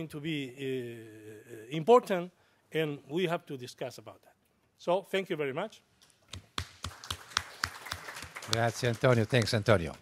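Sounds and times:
audience applause: 6.6s - 10.0s.

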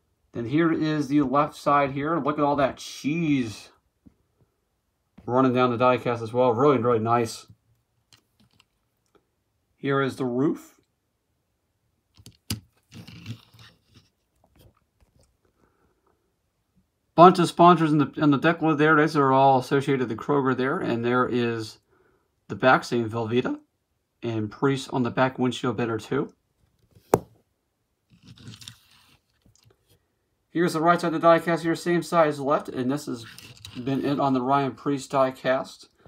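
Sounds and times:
toy car scraping on tabletop: 12.9s - 14.1s, 28.1s - 29.4s, 33.2s - 34.2s
brief rustle: 28.1s - 30.0s.

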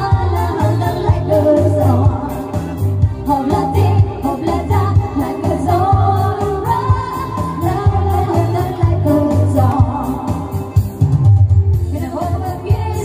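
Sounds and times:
woman singing amplified: 0.0s - 11.0s, 11.8s - 13.0s
electronic keyboard with beat: 0.0s - 13.0s
pulsing bass line: 0.0s - 13.0s.

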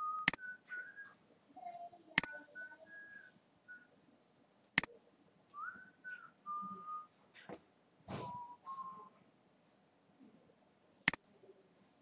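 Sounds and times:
person whistling descending notes: 0.0s - 1.2s, 2.2s - 3.9s, 5.6s - 7.2s, 8.2s - 9.2s
sharp click: 0.3s - 0.6s, 4.6s - 4.9s, 11.1s - 11.4s.

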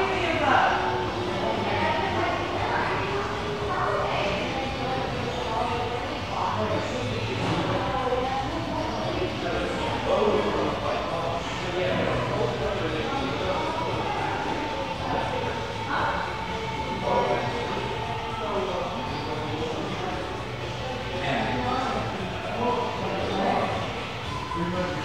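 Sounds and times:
indistinct voices talking: 0.0s - 25.0s.

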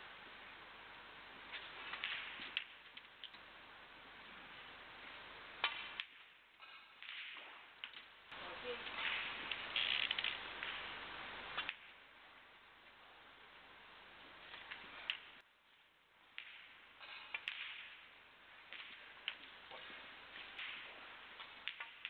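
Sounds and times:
snooker balls clicking: 14.5s - 15.4s, 16.3s - 22.0s.

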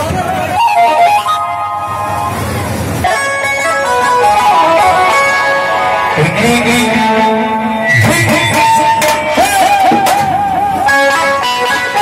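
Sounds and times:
loud live band music: 0.0s - 12.0s
lead instrument melody: 0.3s - 12.0s.

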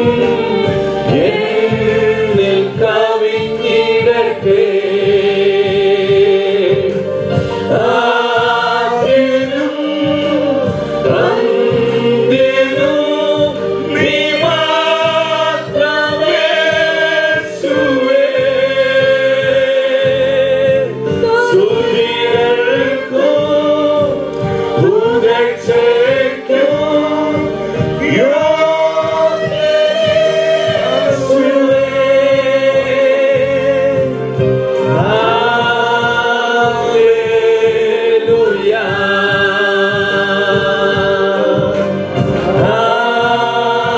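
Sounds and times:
women and man singing amplified: 0.0s - 43.9s.

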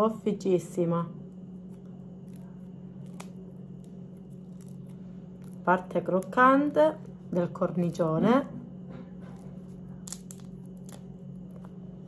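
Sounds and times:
steady low hum: 0.0s - 12.0s
bread crust crackling: 1.1s - 8.0s, 9.2s - 12.0s.

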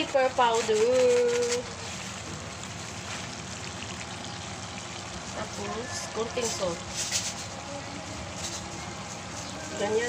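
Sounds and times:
vegetables sizzling in a pan: 0.0s - 10.0s.

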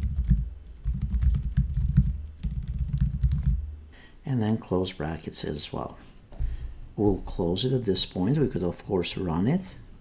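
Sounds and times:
typing on computer keyboard: 0.0s - 3.6s.

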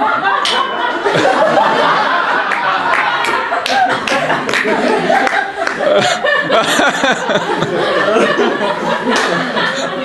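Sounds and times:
audience clapping: 2.1s - 6.2s, 9.0s - 9.4s
people's voices: 2.6s - 10.0s.

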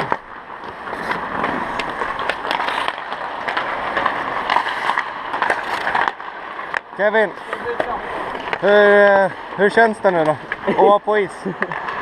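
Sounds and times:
skate blades scraping on ice: 0.0s - 12.0s.

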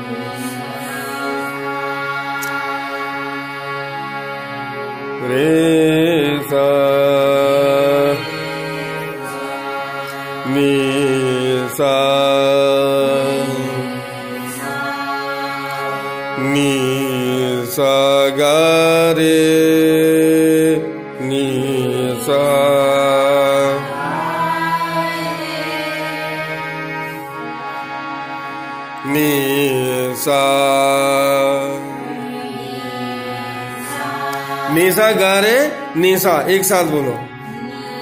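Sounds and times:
harmonium drone: 0.0s - 38.0s.

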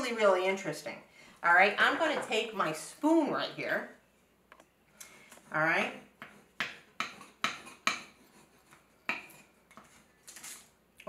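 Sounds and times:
wooden spoon knocking and scraping: 1.9s - 2.5s, 5.4s - 10.6s.

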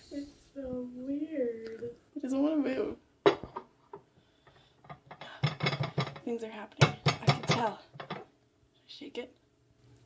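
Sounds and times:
dish knocking: 3.2s - 4.0s, 4.9s - 8.3s
dishes clinking and clattering: 3.2s - 8.3s.

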